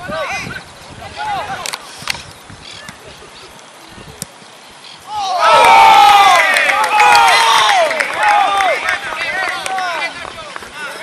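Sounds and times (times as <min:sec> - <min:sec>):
people shouting and cheering: 0:00.0 - 0:01.7, 0:05.1 - 0:11.0.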